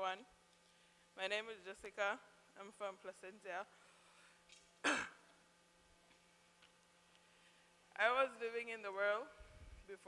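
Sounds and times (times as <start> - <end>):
woman clearing her throat: 4.8 - 5.3.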